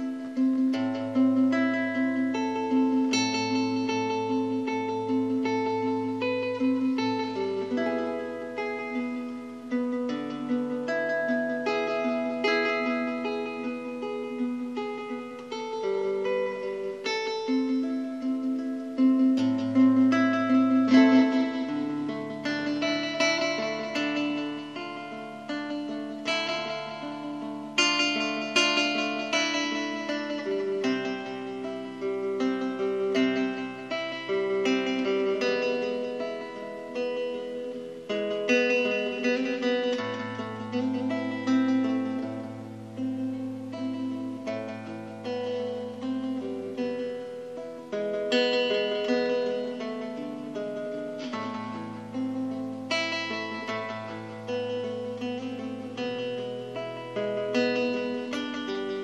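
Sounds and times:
classical guitar fingerstyle: 0.0s - 59.0s.

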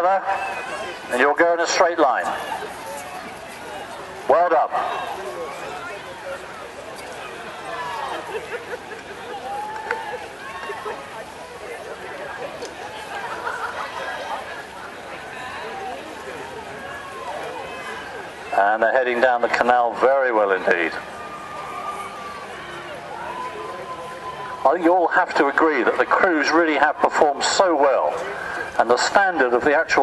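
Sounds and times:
crowd chatter: 0.0s - 30.0s
distant people calling and shouting: 0.0s - 30.0s
steady outdoor hiss: 0.0s - 30.0s.

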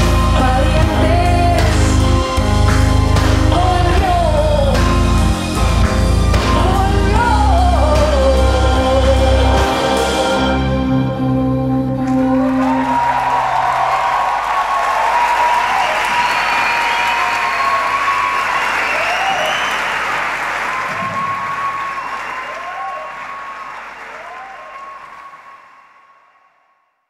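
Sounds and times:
audience applauding and cheering: 12.0s - 26.4s
whistles from audience: 14.8s - 26.8s.

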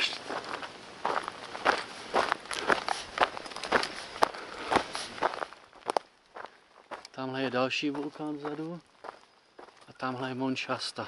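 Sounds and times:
footsteps on a trail: 0.0s - 11.0s.

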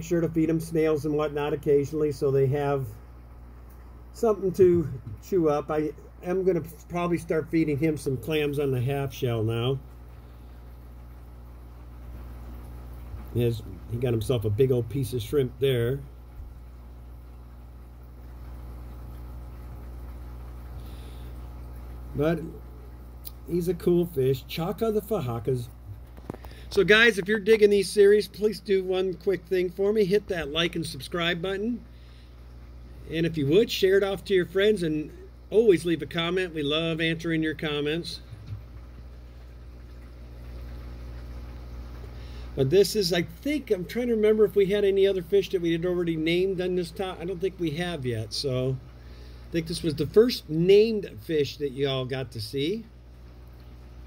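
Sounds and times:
faint moving water: 0.0s - 54.0s
low electrical hum: 0.0s - 54.0s.

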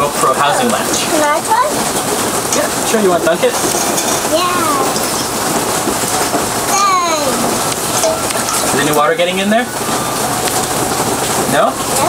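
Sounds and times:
steady rain hiss: 0.0s - 12.0s.

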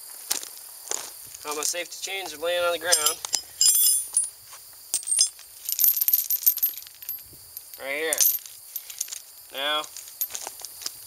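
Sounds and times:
metal chain rattling: 2.6s - 10.4s
metal wrenches clinking: 2.7s - 4.3s, 4.9s - 9.2s.

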